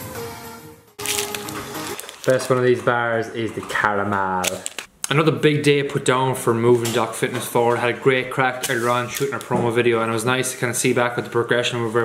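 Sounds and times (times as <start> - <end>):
background music: 0.0 - 3.4
plastic wrapper crinkling: 1.0 - 2.8, 4.3 - 4.9.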